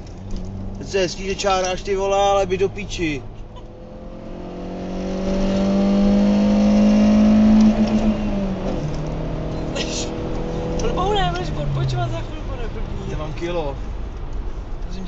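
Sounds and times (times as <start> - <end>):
car engine accelerating and shifting: 0.0 - 15.0.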